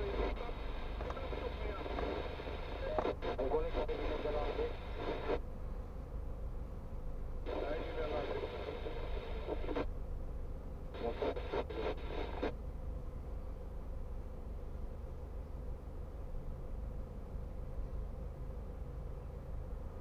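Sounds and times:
voice from car radio: 0:00.0 - 0:05.4, 0:07.5 - 0:09.8, 0:11.0 - 0:12.5.

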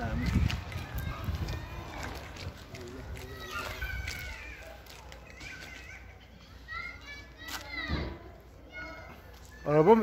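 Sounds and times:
children calling out: 0:00.4 - 0:10.0.

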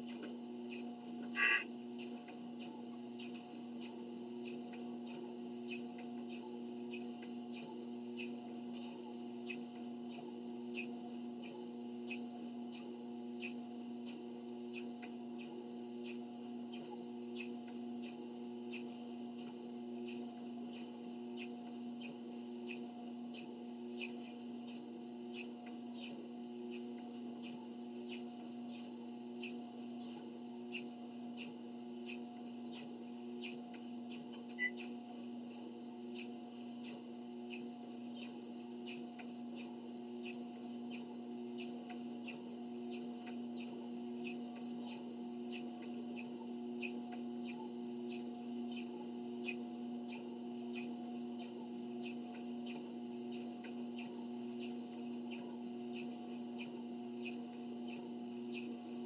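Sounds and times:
treadmill motor humming: 0:00.0 - 0:59.0.

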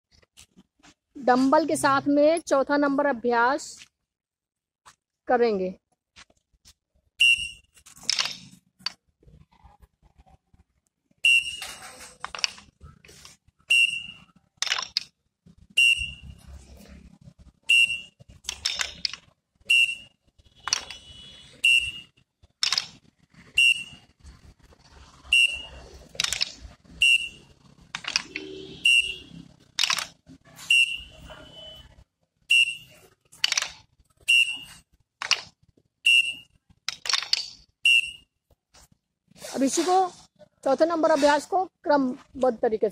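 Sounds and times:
dumbbells clacking together: 0:14.6 - 0:15.1, 0:18.4 - 0:19.2, 0:20.6 - 0:21.1, 0:22.6 - 0:23.0, 0:36.9 - 0:37.6.

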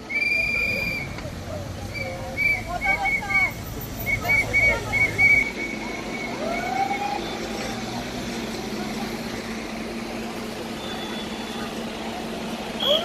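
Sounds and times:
cars driving: 0:00.0 - 0:13.0
vehicle engine running: 0:00.4 - 0:13.0.

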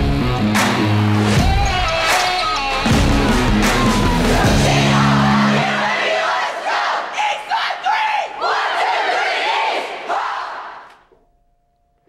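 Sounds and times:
rock music: 0:00.0 - 0:05.8
group shouting team cheer: 0:03.1 - 0:10.9.

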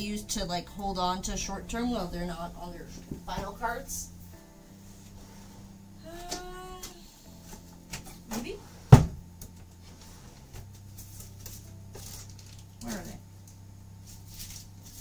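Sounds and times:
faint background music: 0:00.0 - 0:15.0.

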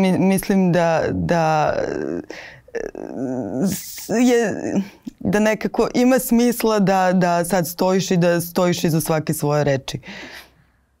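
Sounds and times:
woman making drawn-out vocal sounds: 0:01.6 - 0:05.0.

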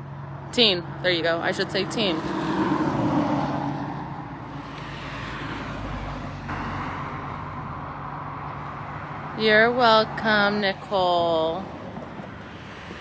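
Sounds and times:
car passing by: 0:01.6 - 0:09.4.

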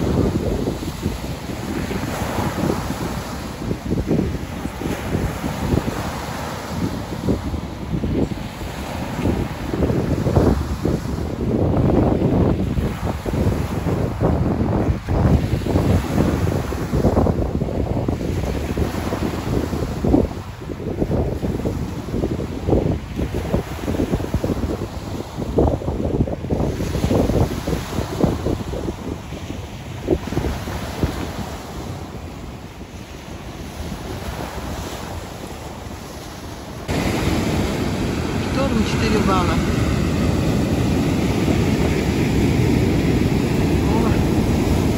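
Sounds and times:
wind buffeting microphone: 0:00.0 - 0:44.9
surf breaking on pebble beach: 0:36.0 - 0:44.9.

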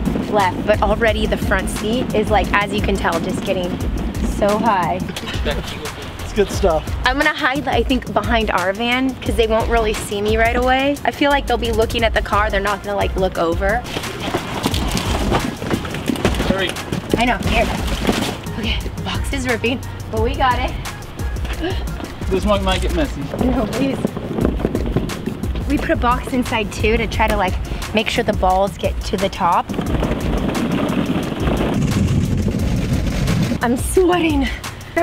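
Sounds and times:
plastic balls clattering: 0:13.8 - 0:18.5.

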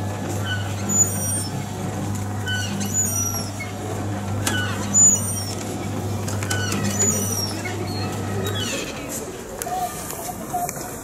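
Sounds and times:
steady low hum: 0:00.0 - 0:09.6.

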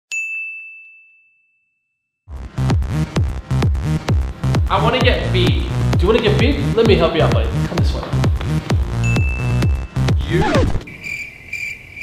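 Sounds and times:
high bell-like ding: 0:00.1 - 0:02.1, 0:09.0 - 0:09.7.

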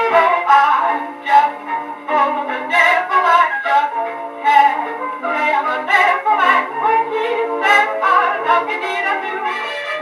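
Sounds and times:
old dance band record playing: 0:00.0 - 0:10.0.

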